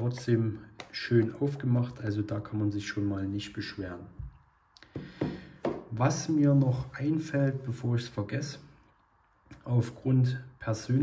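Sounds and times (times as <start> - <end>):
handling taps and knocks: 0.0 - 1.5.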